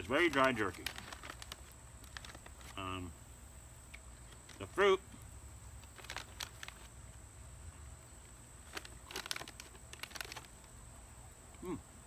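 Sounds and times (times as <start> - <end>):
short clicks and rustles: 0.1 - 2.8, 8.6 - 10.7.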